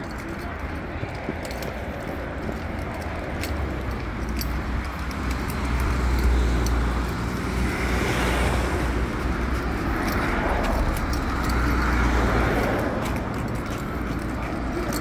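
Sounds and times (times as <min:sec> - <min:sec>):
cars passing on road: 0:00.0 - 0:15.0.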